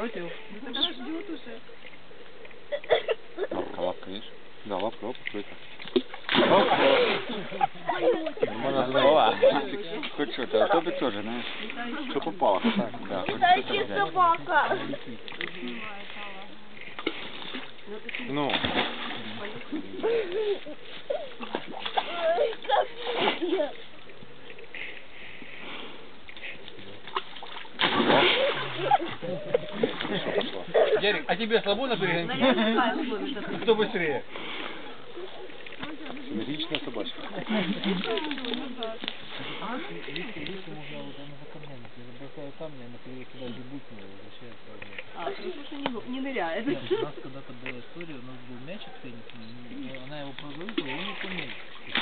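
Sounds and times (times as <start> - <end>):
dog splashing into water: 5.8 - 7.6, 18.4 - 19.7, 27.0 - 30.5, 50.4 - 52.0.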